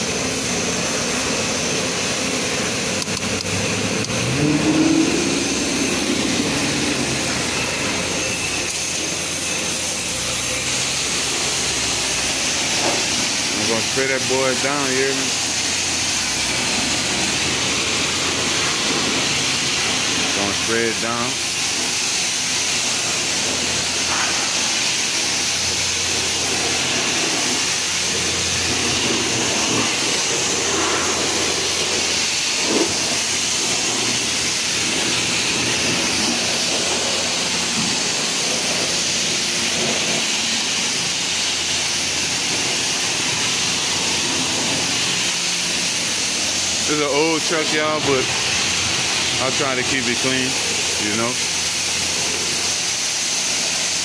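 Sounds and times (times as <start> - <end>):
car wash equipment rushing: 0.0 - 54.0
rising mechanical tone: 2.9 - 9.8.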